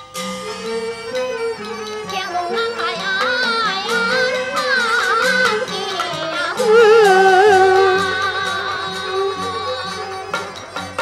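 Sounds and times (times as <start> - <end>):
person singing with wide vibrato: 1.0 - 11.0
opera ensemble playing melody: 3.8 - 11.0.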